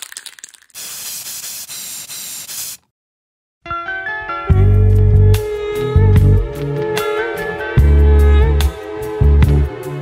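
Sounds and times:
spray paint can hissing: 0.0 - 2.9.

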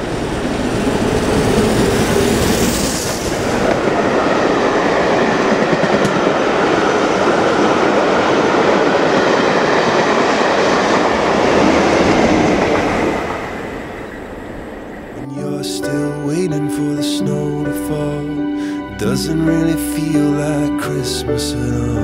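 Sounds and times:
steam train passing at speed: 0.0 - 20.7.

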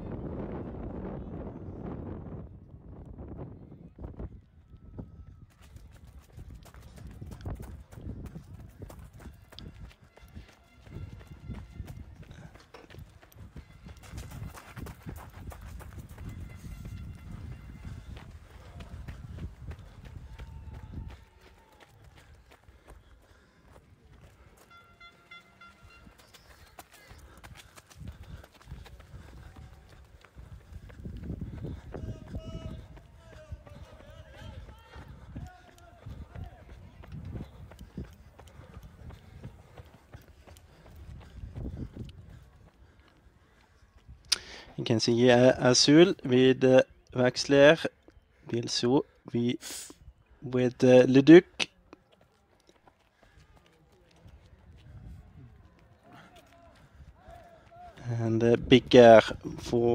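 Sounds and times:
wind buffeting microphone: 0.0 - 24.5, 25.9 - 44.3, 54.2 - 55.9
running footsteps: 4.1 - 59.9.

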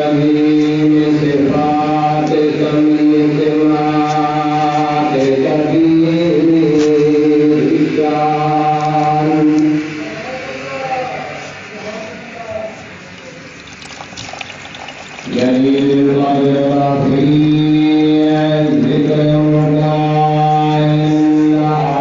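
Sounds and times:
man chanting: 0.0 - 11.4, 15.2 - 22.0.

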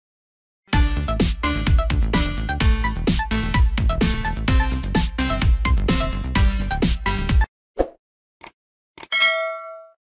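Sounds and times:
electronic music with beat: 0.8 - 7.5
bell-like ding: 9.1 - 10.0.

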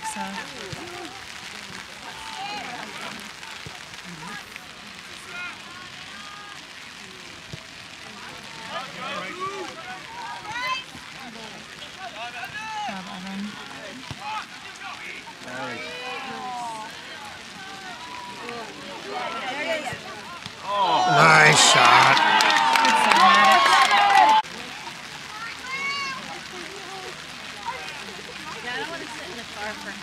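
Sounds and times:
rain hissing: 0.0 - 30.0
players and spectators shouting: 0.2 - 28.6.

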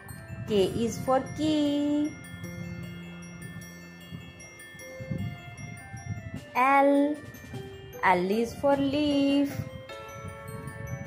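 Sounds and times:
chime-like bell tones: 0.0 - 11.0.

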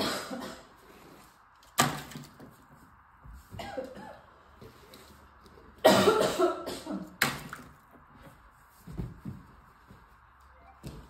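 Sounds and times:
toy cars splashing into water: 1.7 - 2.4.

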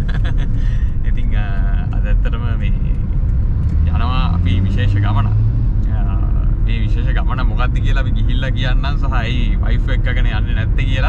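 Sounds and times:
car rumbling from inside cabin: 0.0 - 11.0.

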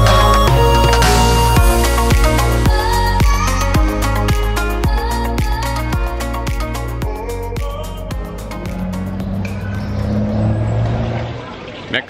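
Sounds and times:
background music: 0.0 - 11.2
vehicle engine passing: 7.8 - 11.9.

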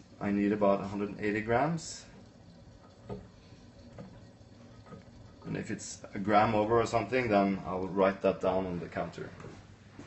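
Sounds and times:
water trickling into bowl: 0.0 - 9.6.

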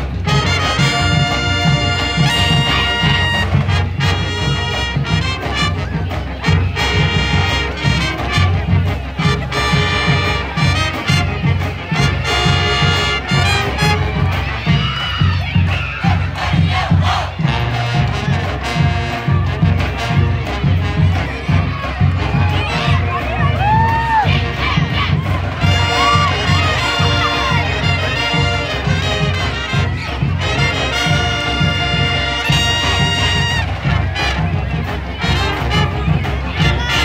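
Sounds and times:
crowd shouting and cheering: 0.0 - 37.0
pep band brass tune: 0.0 - 37.0
steady drum beat: 0.0 - 37.0.

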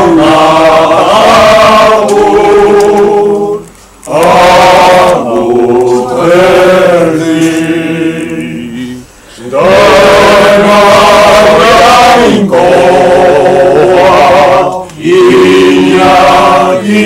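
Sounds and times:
choir singing: 0.0 - 17.0.

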